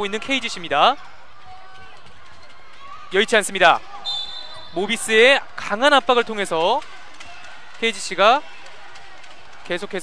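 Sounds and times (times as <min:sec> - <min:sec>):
running footsteps on court: 0:00.1 - 0:10.0.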